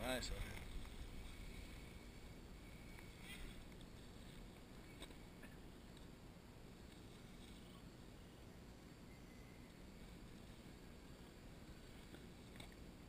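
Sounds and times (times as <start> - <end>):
faint low rumble: 0.0 - 13.0.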